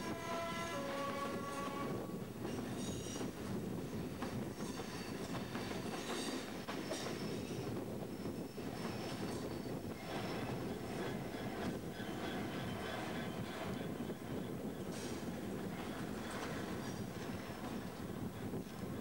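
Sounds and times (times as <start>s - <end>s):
train wheels rumbling on rail: 0.0s - 19.0s.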